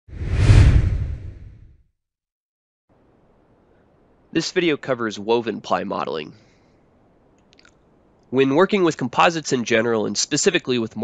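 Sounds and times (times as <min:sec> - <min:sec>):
deep whoosh sound effect: 0:00.1 - 0:01.8.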